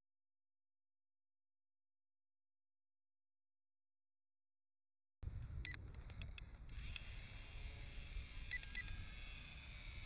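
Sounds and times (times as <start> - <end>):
faint clicks: 5.6 - 7.1.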